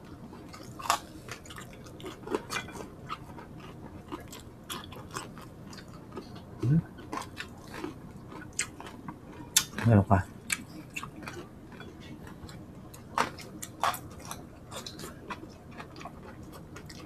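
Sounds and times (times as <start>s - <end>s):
crunchy chewing: 0.0s - 17.0s.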